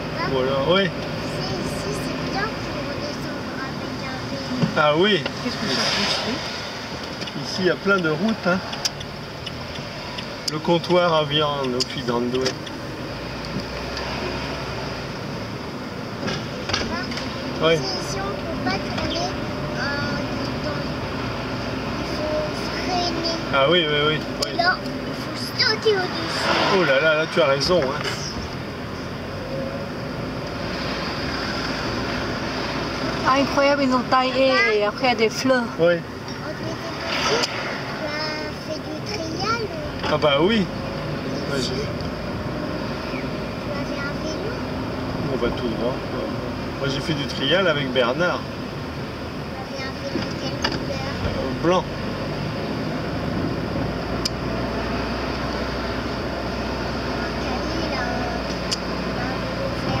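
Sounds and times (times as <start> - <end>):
car road and engine noise: 0.0 - 60.0.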